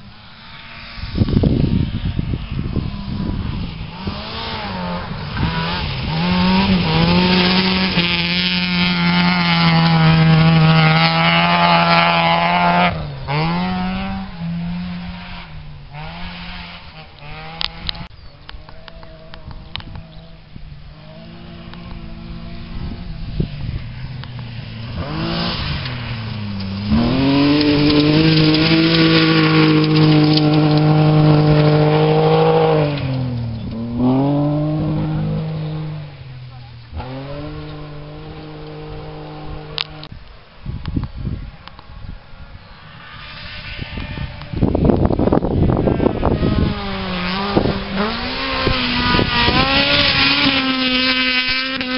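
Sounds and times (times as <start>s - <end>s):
rally car engine at high revs: 0.5s - 40.1s, 43.0s - 51.9s.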